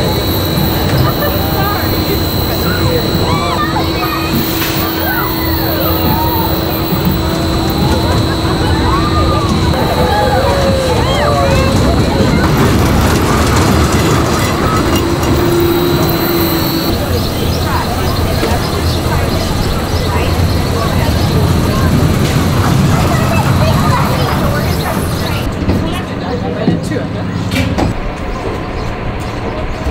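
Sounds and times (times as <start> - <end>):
held hum: 0.0 - 25.6
people's voices: 0.0 - 29.9
ride cars rumbling along track: 0.0 - 29.9.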